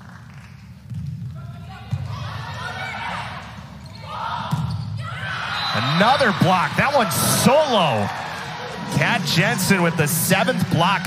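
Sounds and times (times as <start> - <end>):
voices in hall: 1.3 - 11.0
crowd noise: 1.4 - 11.0.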